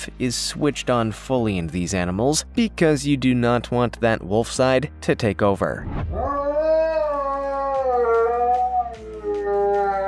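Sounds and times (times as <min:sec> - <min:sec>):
dog howling: 0:06.2 - 0:10.0.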